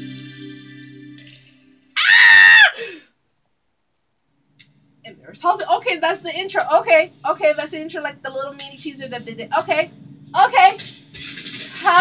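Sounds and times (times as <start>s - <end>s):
woman screaming: 2.0s - 3.0s
faint music: 4.3s - 12.0s.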